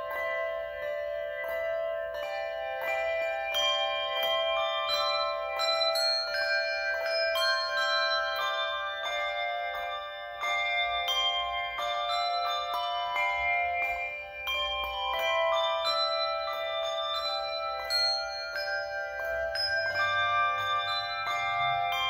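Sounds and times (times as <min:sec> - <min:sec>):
handbells ringing in chords: 0:00.0 - 0:22.0.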